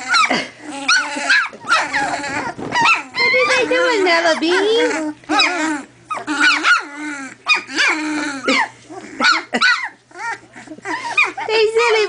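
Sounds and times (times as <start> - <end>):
puppies yipping and whining: 0.0 - 12.0.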